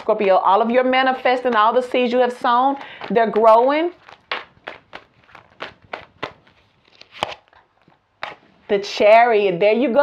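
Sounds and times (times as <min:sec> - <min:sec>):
cards being shuffled: 0:01.1 - 0:08.5.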